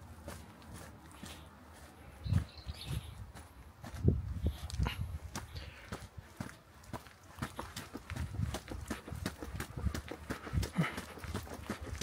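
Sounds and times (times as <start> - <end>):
footsteps on concrete steps: 0.0 - 12.0.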